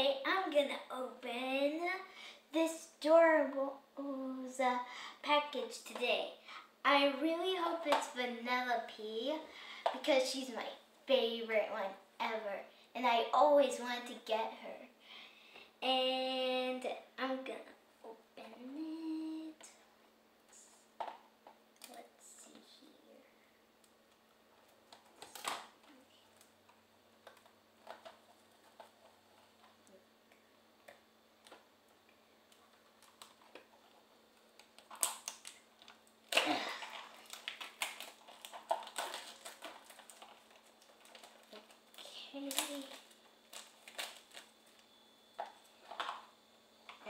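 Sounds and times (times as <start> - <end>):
plastic packaging crinkling: 32.5 - 46.3.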